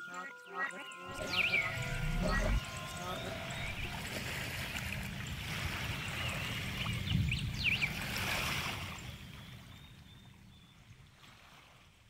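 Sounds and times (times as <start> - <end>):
sustained musical tones: 0.0 - 5.5.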